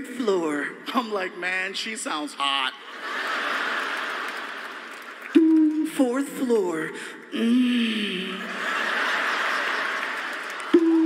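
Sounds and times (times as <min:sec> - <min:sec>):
audience laughter: 0:02.8 - 0:05.3, 0:08.3 - 0:11.0.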